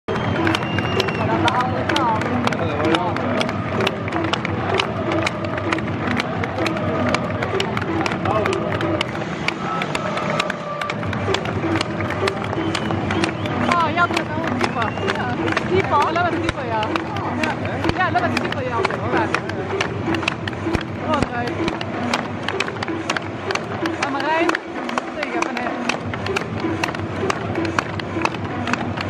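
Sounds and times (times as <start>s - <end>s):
music over loudspeakers: 0.1s - 29.0s
sharp claps: 0.1s - 29.0s
stadium crowd: 0.1s - 29.0s
voices singing or shouting: 2.9s - 28.3s.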